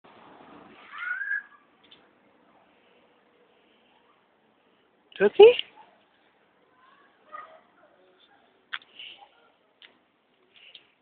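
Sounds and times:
pet animal high whine: 0.8 - 1.7.

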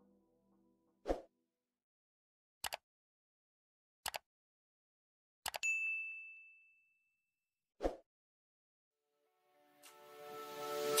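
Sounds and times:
mouse clicks: 2.6 - 2.8, 4.0 - 4.2
high bell ding: 5.6 - 7.2.

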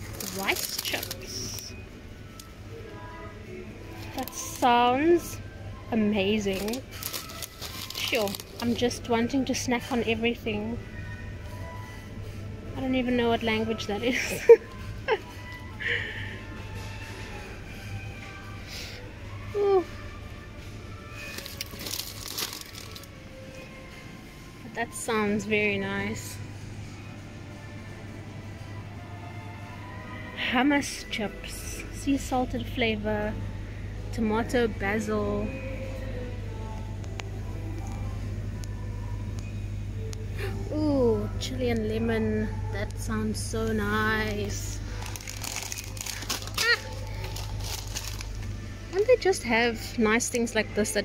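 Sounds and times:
plastic snack bag crinkling: 0.0 - 1.8, 6.3 - 9.0, 21.1 - 23.2, 44.8 - 48.5
faint background music: 0.0 - 51.0
low hum: 31.2 - 50.0.

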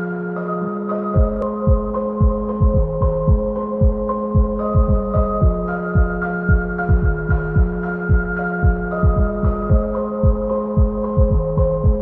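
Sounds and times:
synthesizer chords: 0.0 - 12.0
deep kick drum: 1.2 - 12.0.

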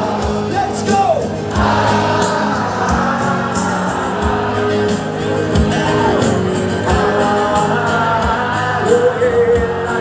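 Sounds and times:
live band playing: 0.0 - 10.0
person singing: 5.7 - 10.0.

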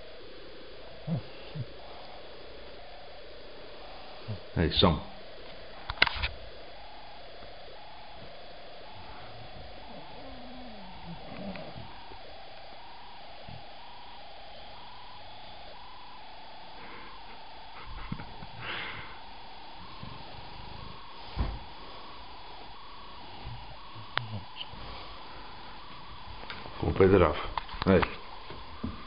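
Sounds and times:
dog snoring: 9.1 - 12.3
dog groaning: 9.4 - 12.1
soft thump: 21.3 - 21.7.

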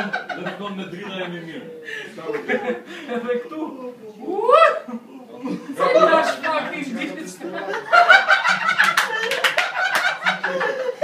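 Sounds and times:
men laughing loudly: 0.0 - 0.8, 7.4 - 11.0.

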